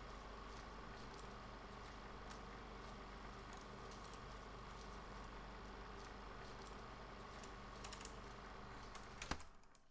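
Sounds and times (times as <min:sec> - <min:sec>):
steady low hum: 0:00.0 - 0:09.1.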